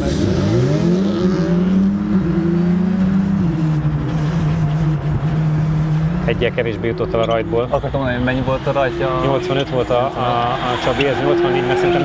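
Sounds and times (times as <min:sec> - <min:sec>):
rally car engine on track: 0:00.0 - 0:12.0.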